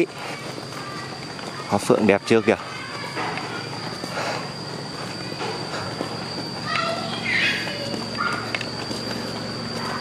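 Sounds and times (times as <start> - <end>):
outdoor noise: 0.0 - 10.0
steady high-pitched whine: 0.0 - 10.0.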